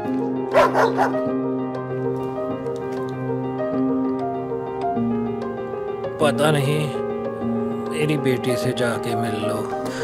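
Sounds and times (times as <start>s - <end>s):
dog barking: 0.5s - 1.3s.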